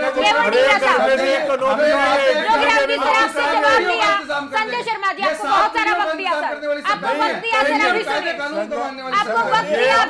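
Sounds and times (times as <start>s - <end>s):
people arguing over one another: 0.0s - 10.0s.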